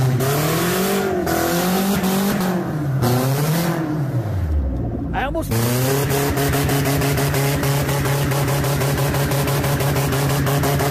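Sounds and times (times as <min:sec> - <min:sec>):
loud car engine revving: 0:00.0 - 0:10.9.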